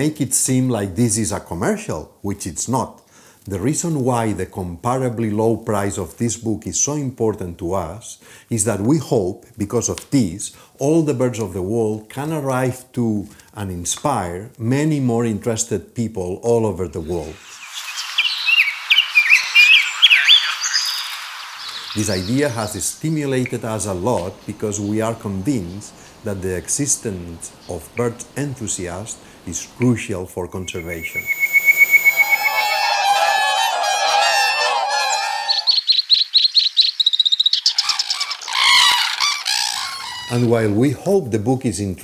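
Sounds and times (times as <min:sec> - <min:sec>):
bird singing whistled notes: 0:17.5 - 0:22.4, 0:30.6 - 0:33.2, 0:35.5 - 0:38.0
thin high bird notes: 0:30.6 - 0:35.8
cranes calling: 0:30.6 - 0:40.5
swans calling: 0:30.6 - 0:40.5.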